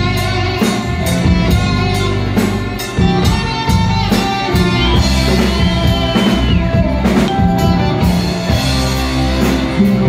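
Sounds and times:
rock band playing: 0.0 - 10.0
electric guitar held high note: 4.6 - 9.4.

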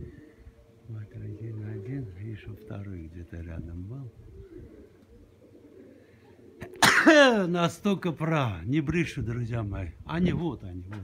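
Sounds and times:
pigeons cooing faintly: 0.0 - 11.0.

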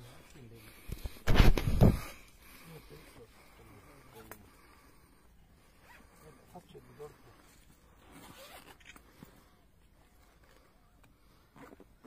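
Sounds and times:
quiet voices talking: 0.0 - 8.0
bag zipper opening: 8.0 - 9.1.

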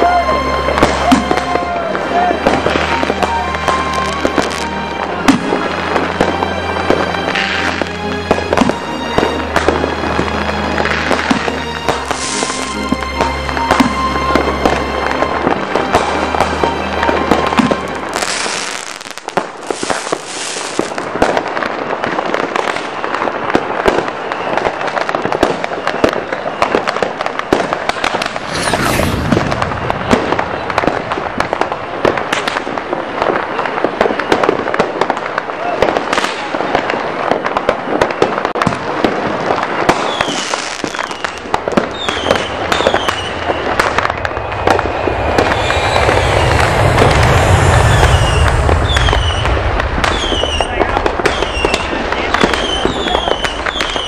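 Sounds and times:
fireworks crackling and banging: 0.0 - 54.0
falling firework whistles: 11.0 - 38.8, 39.4 - 54.0.

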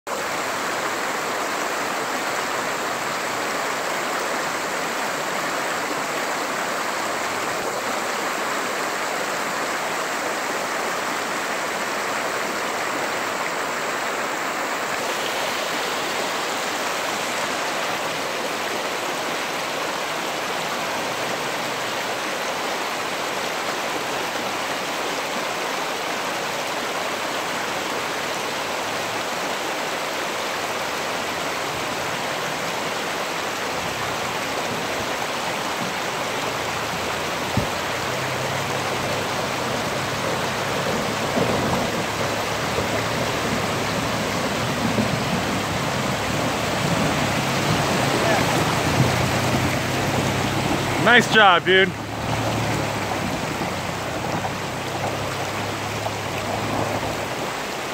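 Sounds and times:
water rushing over rocks: 0.1 - 57.9
water splashing around tyres: 0.1 - 57.9
pickup truck engine hum: 36.0 - 57.8.

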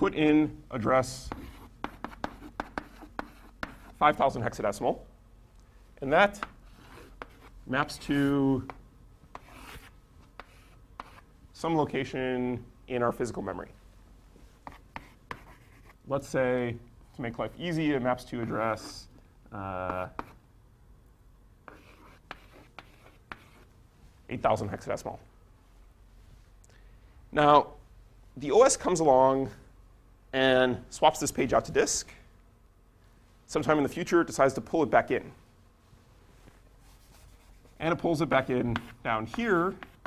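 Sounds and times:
chalk scratching on blackboard: 1.2 - 4.0, 6.4 - 11.3, 14.6 - 16.0, 19.9 - 20.4, 21.7 - 23.7, 36.8 - 38.0, 38.7 - 40.0
chalk tapping on blackboard: 1.3 - 4.0, 6.4 - 7.5, 8.6 - 11.2, 14.6 - 16.0, 19.9 - 20.4, 21.7 - 23.7, 38.7 - 40.0.

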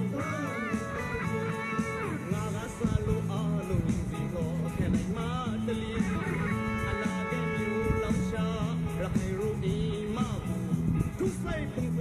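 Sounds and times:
song with guitar and bass: 0.0 - 12.0.

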